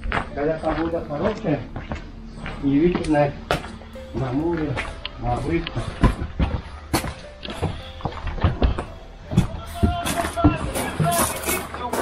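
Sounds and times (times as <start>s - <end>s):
background music: 0.0s - 12.0s
footsteps on concrete: 0.0s - 12.0s
indistinct voices: 0.0s - 12.0s.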